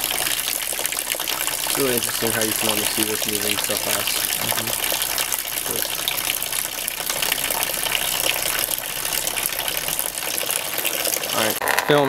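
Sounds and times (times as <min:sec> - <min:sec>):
hose water splashing into trough: 0:00.0 - 0:11.6.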